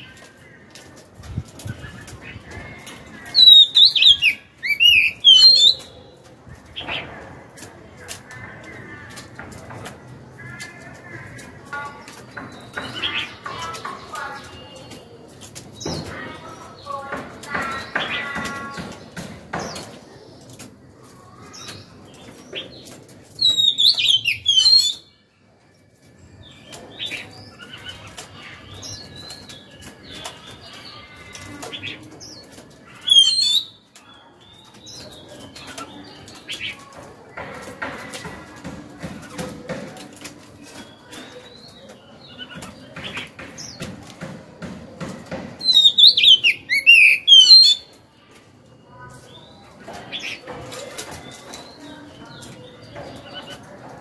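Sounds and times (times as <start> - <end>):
bird singing whistled notes: 3.3 - 5.9.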